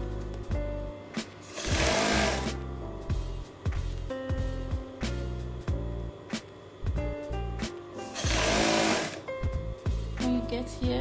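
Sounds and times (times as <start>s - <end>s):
background music: 0.0s - 11.0s
sewing machine stitching: 1.5s - 2.5s, 8.1s - 9.2s.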